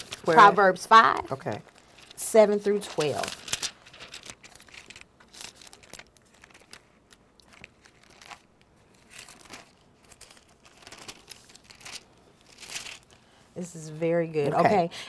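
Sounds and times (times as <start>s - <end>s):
thin pages turning: 0.0s - 13.2s.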